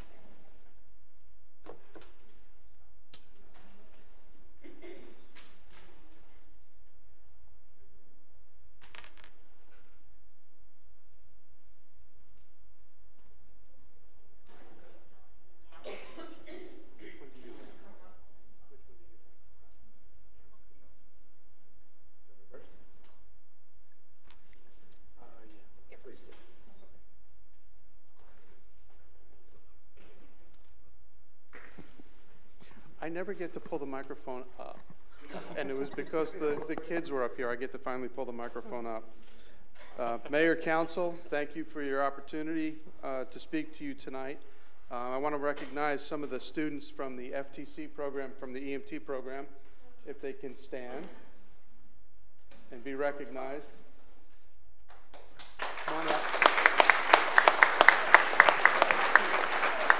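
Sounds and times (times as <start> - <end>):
people clapping: 54.8 - 59.9.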